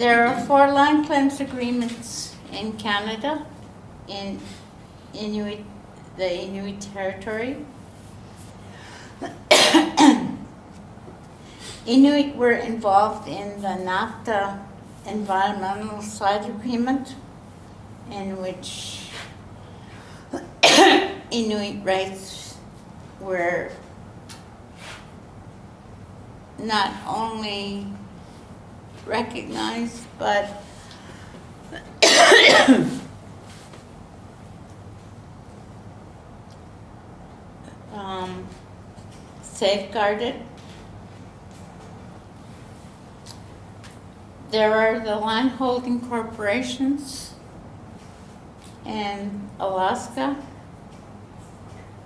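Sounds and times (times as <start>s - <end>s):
person coughing: 9.2s - 10.4s, 20.3s - 21.2s, 31.8s - 33.1s.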